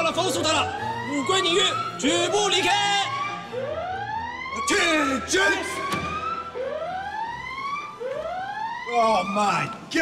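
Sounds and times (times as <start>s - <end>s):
siren wailing: 0.0s - 10.0s.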